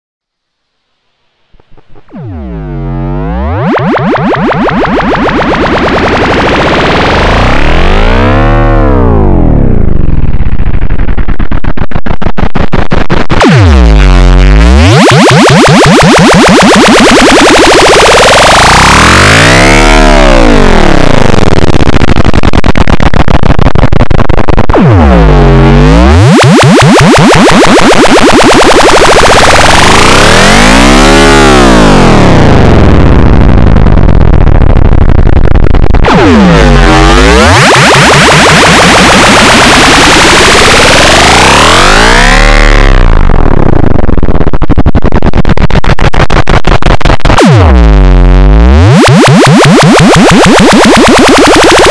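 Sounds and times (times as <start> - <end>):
pulsing buzzing tone: 0.6 - 12.4, 13.4 - 51.9
distorted electronic music: 1.4 - 51.9.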